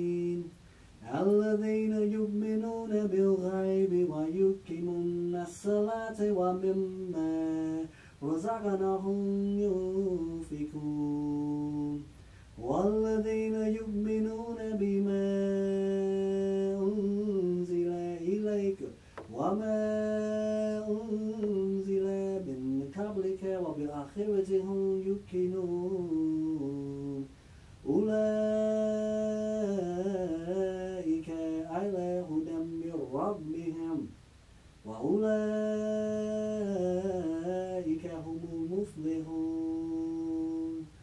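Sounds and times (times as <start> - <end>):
man chanting recitation: 0.0 - 34.2, 34.8 - 41.0.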